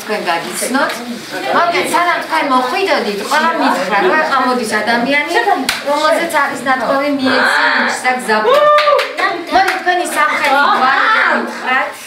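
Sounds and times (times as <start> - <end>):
people talking: 0.0 - 12.0
hand claps: 5.6 - 5.9, 8.5 - 10.8.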